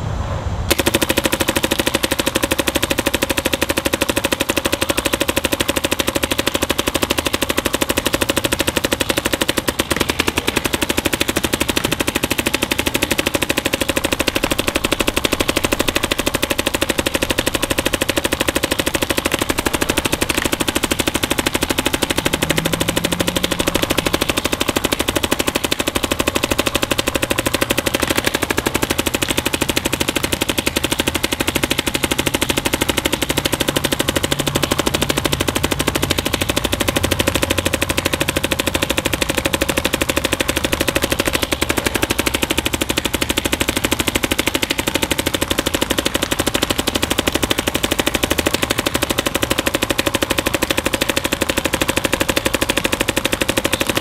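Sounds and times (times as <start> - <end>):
paintball marker firing rapidly: 0.7 - 54.0.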